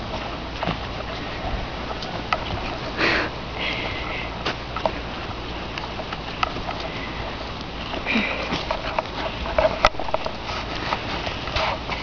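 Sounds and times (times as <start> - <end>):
footsteps on trail: 0.0 - 12.0
outdoor noise: 0.0 - 12.0.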